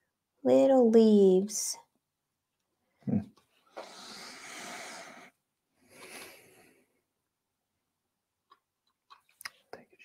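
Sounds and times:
long breathy exhale: 3.8s - 6.7s.

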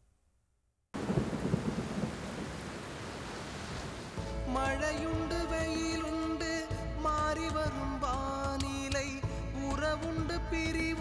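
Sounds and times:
thunder rumble: 1.0s - 4.2s
heavy rain hissing: 1.0s - 4.6s.

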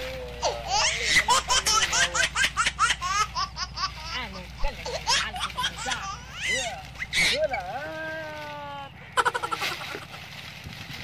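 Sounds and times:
high-pitched laughter: 5.0s - 7.9s, 9.2s - 10.3s.

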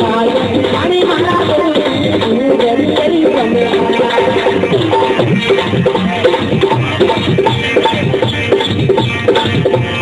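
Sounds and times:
hand drum rhythm: 0.0s - 10.0s.

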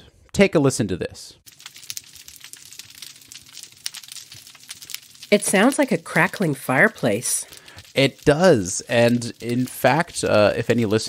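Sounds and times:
underwater reef crackle: 1.4s - 11.0s.

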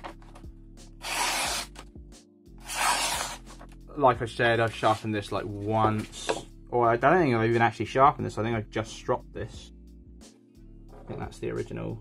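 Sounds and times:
knife slicing through paper: 1.0s - 1.8s, 2.6s - 3.6s.

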